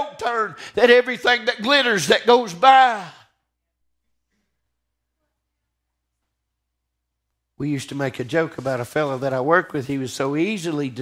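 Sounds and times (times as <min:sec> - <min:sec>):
man speaking: 0:00.0 - 0:03.3, 0:07.6 - 0:11.0.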